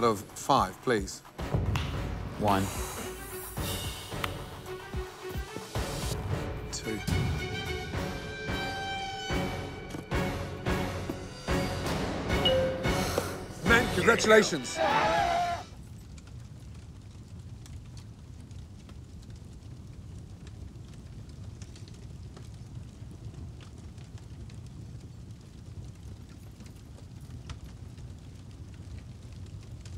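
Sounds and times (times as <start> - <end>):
fire rumble with crackles: 0.0 - 8.6, 13.5 - 29.9.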